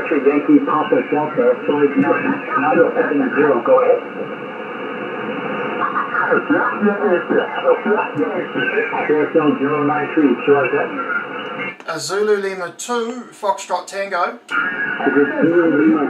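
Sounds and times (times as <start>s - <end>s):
radio band hiss: 0.0s - 16.0s
radio speech: 0.0s - 16.0s.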